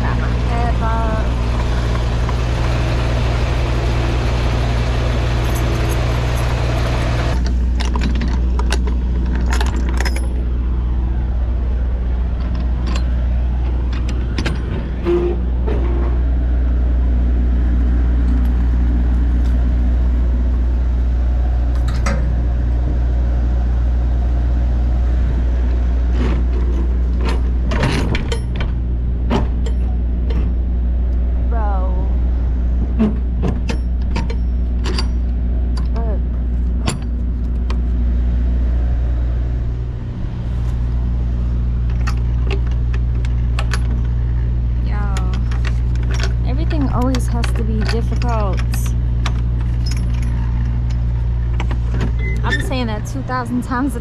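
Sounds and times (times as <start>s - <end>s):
diesel engine idling: 0.0s - 54.0s
metallic clinks and rattles of latch: 7.4s - 10.5s, 12.4s - 14.9s, 27.1s - 28.8s, 33.5s - 36.0s, 41.8s - 44.4s, 45.2s - 52.8s.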